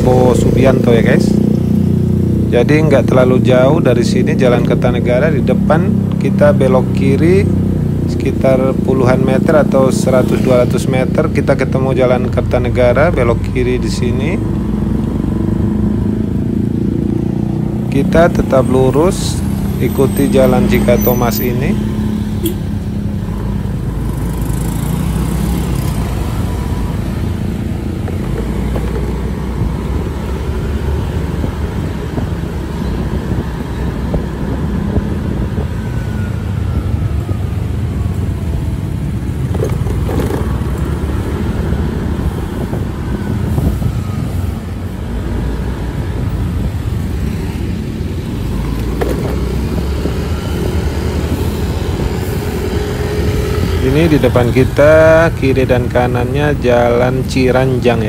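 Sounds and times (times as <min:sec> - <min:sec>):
passing traffic engines: 0:00.0 - 0:58.0
vehicle rumble: 0:00.0 - 0:58.0.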